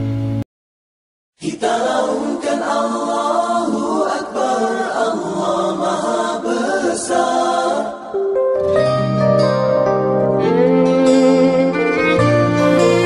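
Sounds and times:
vocal group singing a cappella: 1.4 - 8.3.

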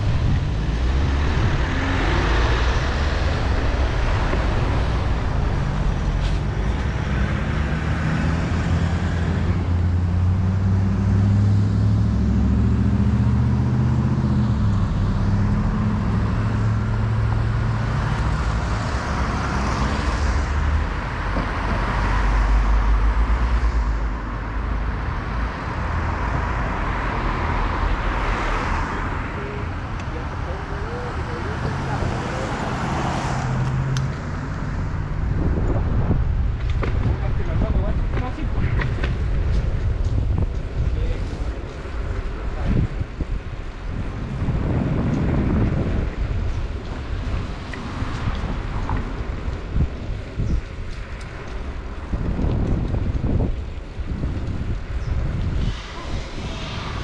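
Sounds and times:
cars passing: 0.0 - 57.0
heavy vehicle engine rumble: 0.0 - 57.0.

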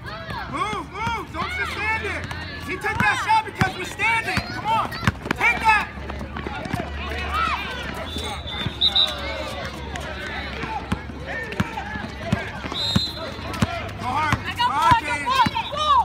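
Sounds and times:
people shouting: 0.0 - 16.0
basketball bouncing on asphalt: 0.1 - 16.0.

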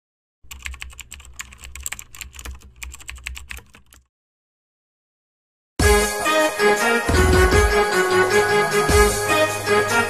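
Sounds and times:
keyboard typing: 0.5 - 4.1.

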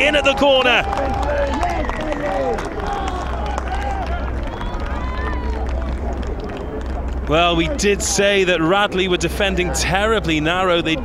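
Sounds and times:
players and spectators shouting: 0.0 - 6.2
steady low rumble: 0.0 - 11.0.

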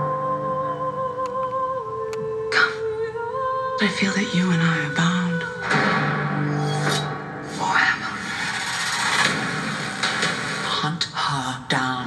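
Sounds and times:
noisy trailer rumble: 7.1 - 11.2.

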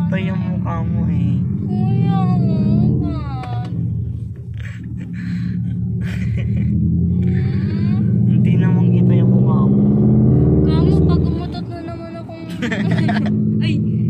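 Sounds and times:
voices in a car: 0.0 - 9.8, 10.6 - 14.0
low rumble: 0.0 - 14.0
people laughing: 4.6 - 6.9, 12.5 - 13.4.

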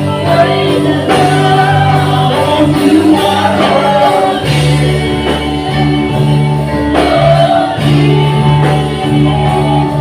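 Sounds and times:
electric bass: 0.0 - 10.0
keyboard: 0.0 - 10.0
people singing into microphones: 0.0 - 10.0.

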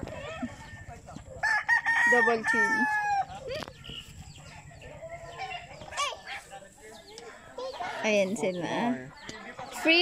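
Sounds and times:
chickens clucking: 0.0 - 10.0.

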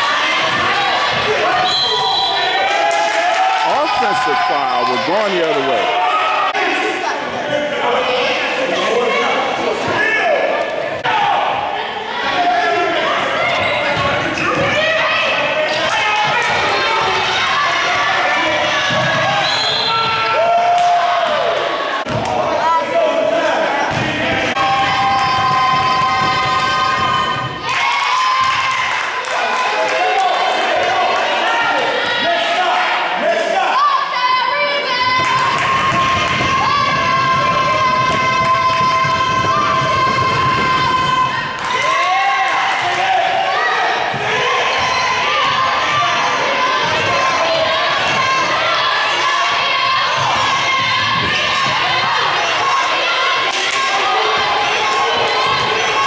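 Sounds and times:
players and spectators voices: 0.0 - 56.0.

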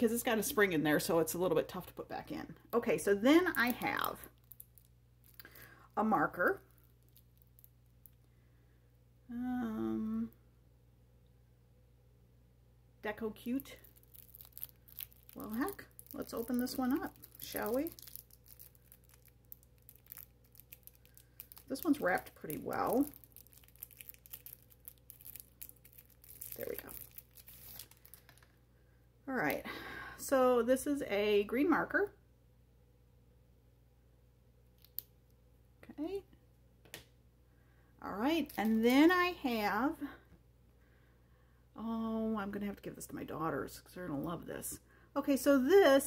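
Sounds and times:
plastic wrapper crinkling and tearing: 3.3 - 5.7, 6.4 - 8.2, 13.5 - 28.6, 34.8 - 35.1, 38.4 - 39.1.

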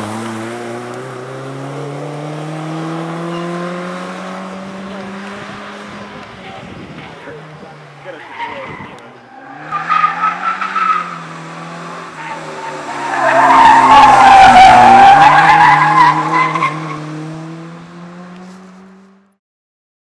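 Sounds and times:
rally car engine at high revs: 0.0 - 19.4
tyres squealing: 6.4 - 11.4, 12.0 - 17.0.

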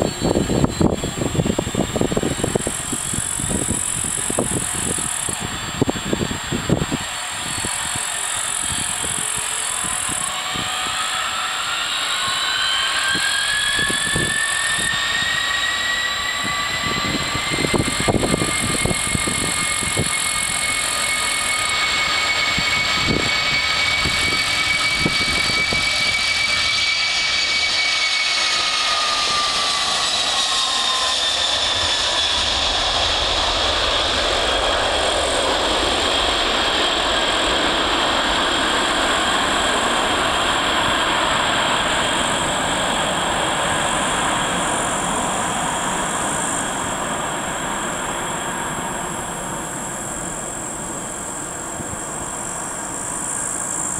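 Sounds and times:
jet engine whine: 0.0 - 53.9
jet rushing and rumble: 0.0 - 53.9.

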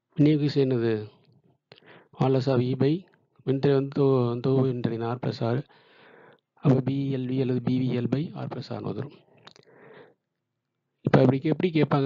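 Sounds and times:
person speaking: 0.2 - 1.2, 2.2 - 5.7, 6.6 - 9.6.

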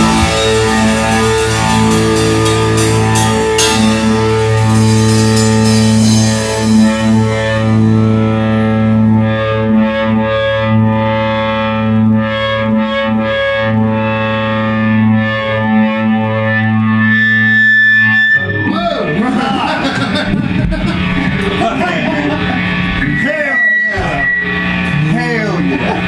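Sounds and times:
cymbal crashes: 0.0 - 8.6
high guitar tone: 0.0 - 26.0
rock band ringing chord: 0.0 - 26.0.

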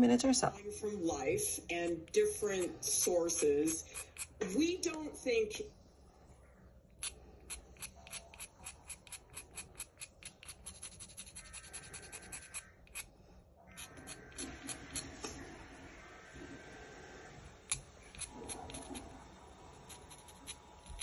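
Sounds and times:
blade scraping pencil: 2.1 - 5.0, 7.0 - 13.1, 13.7 - 15.4, 17.6 - 21.0.

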